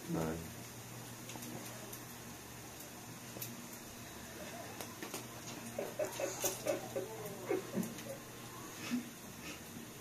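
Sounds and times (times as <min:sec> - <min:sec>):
squeaky pitched calls: 0:05.7 - 0:08.2.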